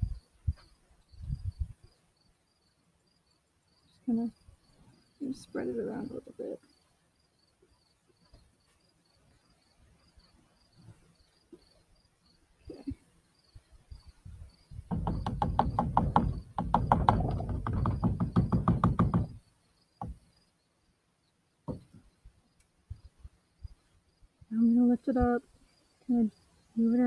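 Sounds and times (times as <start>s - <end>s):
insect chirping: 0.0s - 27.0s
rapid knocking rattle: 14.9s - 19.4s.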